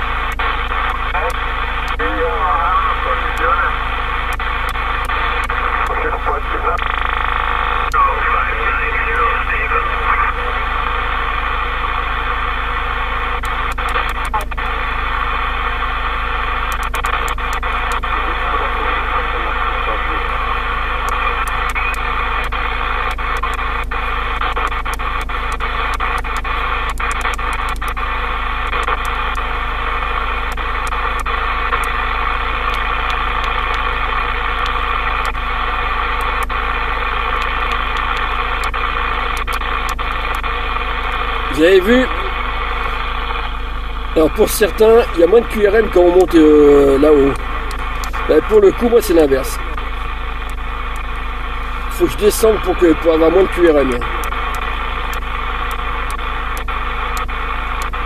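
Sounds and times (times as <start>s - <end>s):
radio crackles and clicks: 0.0s - 58.0s
radio receiver static: 0.0s - 58.0s.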